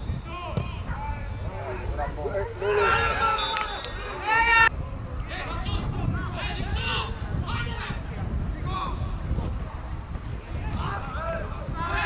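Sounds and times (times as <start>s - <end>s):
people shouting: 2.5s - 4.7s.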